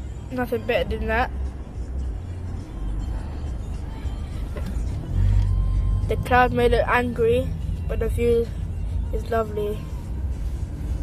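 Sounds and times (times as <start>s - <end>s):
car engine and tyre noise: 0.0s - 11.0s.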